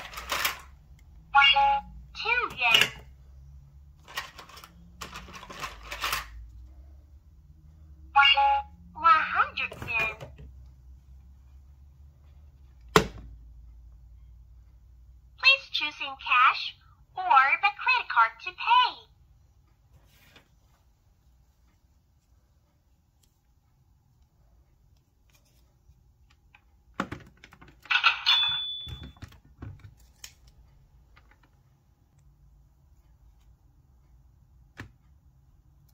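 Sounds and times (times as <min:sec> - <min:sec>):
cash register sound effect: 0:00.0 - 0:00.7, 0:27.9 - 0:29.2.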